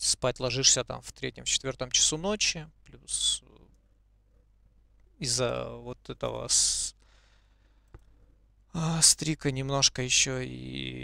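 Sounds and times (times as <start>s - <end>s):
man speaking: 0.0s - 3.7s, 5.2s - 7.0s
faint breath: 7.0s - 8.4s.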